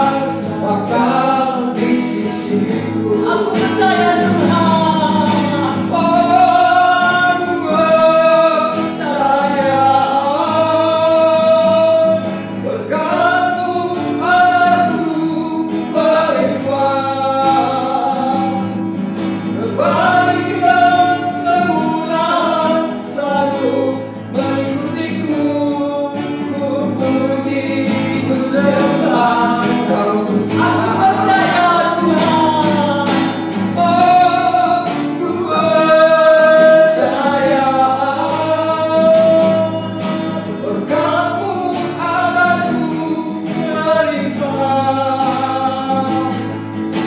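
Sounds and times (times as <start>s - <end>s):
woman singing: 0.0s - 12.2s
acoustic guitar: 0.0s - 47.0s
man singing: 0.0s - 47.0s.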